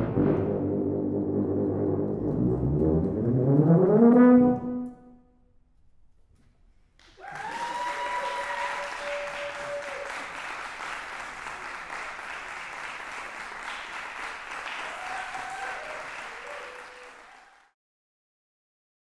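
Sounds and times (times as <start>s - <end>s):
audience applauding: 7.0s - 17.8s
drawn-out cheers: 7.2s - 10.4s, 14.6s - 17.7s.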